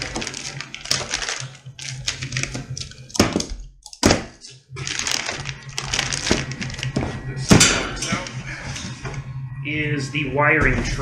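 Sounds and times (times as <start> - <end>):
plastic wrap crackling and clicking: 0.0 - 4.2, 4.8 - 7.0.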